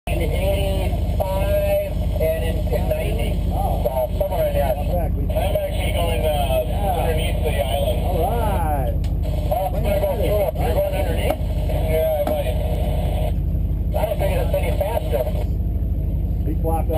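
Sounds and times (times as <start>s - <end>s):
indistinct voices: 0.0s - 15.6s, 16.4s - 16.9s
boat engine droning: 0.0s - 16.9s.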